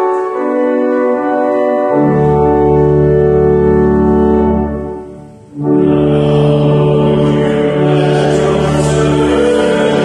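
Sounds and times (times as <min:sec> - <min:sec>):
church organ sustained chord: 0:00.0 - 0:10.0.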